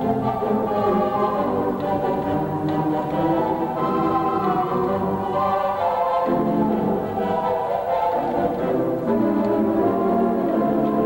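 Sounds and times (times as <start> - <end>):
pipe organ playing chords: 0.0 - 11.0.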